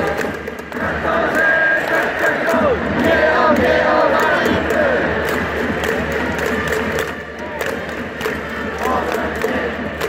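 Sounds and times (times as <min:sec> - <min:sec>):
crowd chanting: 0:00.0 - 0:10.0
music in a stadium: 0:00.0 - 0:10.0.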